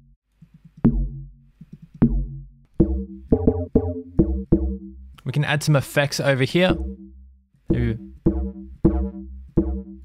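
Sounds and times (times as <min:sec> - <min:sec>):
synth pluck bass notes: 0:02.1 - 0:05.2, 0:06.7 - 0:10.0.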